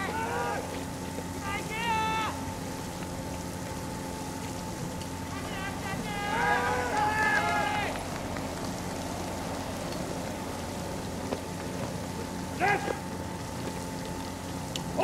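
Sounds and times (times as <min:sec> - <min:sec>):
person shouting: 0:00.0 - 0:00.8, 0:01.4 - 0:02.4, 0:05.4 - 0:08.0, 0:12.6 - 0:13.0
fire pump engine running: 0:00.0 - 0:15.0
water jets hissing: 0:00.0 - 0:15.0.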